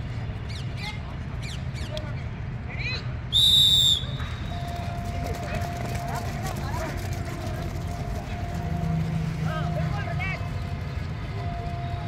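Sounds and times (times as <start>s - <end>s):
whistle blast: 3.3s - 4.9s.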